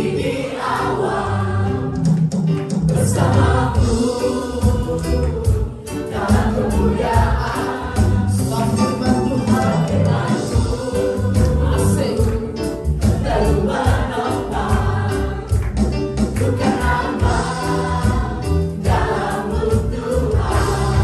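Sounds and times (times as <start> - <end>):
women singing worship song: 0.0 - 1.8, 3.0 - 8.7, 10.1 - 12.2, 13.1 - 15.6, 16.4 - 21.0
band with keyboard and drums: 0.0 - 21.0.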